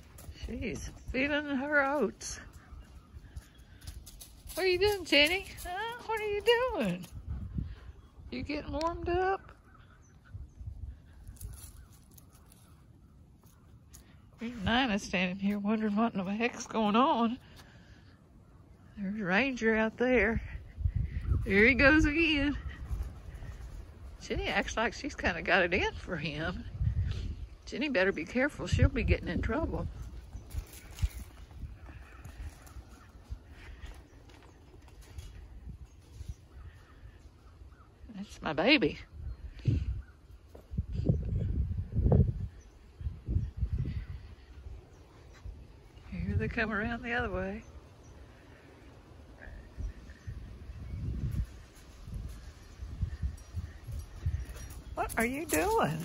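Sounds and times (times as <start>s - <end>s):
wind buffeting microphone: 0.0s - 12.6s, 18.9s - 56.0s.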